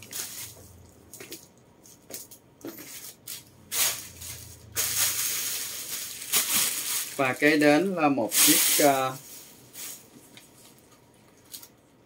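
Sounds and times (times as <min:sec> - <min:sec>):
rustling: 0:02.8 - 0:11.8.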